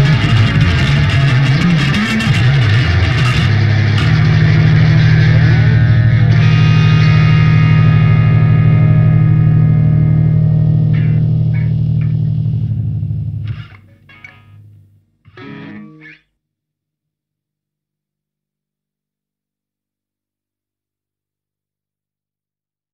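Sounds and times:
rock band playing punk: 0.0 - 9.2, 15.3 - 16.2
guitar and bass chord ringing: 0.0 - 16.2.

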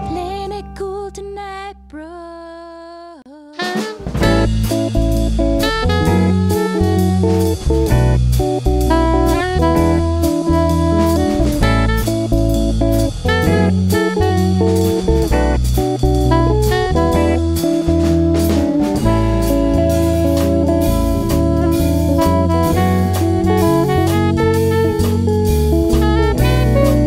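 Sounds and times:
bass line: 3.6 - 27.0
drum kit beat: 3.6 - 27.0.

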